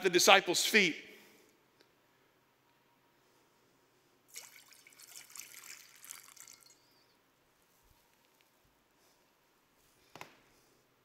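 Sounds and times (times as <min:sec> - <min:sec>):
water pouring into a basin: 0:04.3 - 0:07.0.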